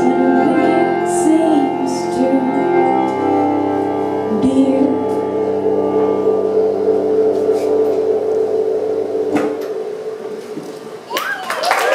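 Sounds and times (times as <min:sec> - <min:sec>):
accordion sustained chord: 0:00.0 - 0:11.1.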